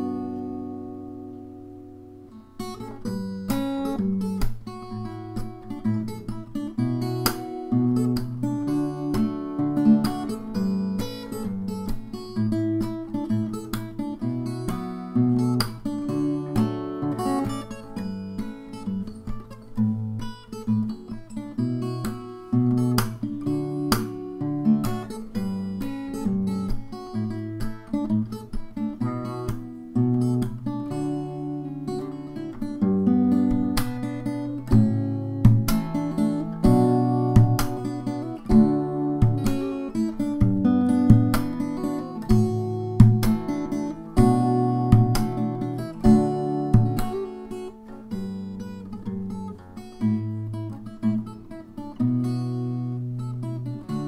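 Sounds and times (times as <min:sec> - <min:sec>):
fingerstyle acoustic guitar: 0:00.0 - 0:54.0
percussive hits on guitar: 0:34.6 - 0:47.3.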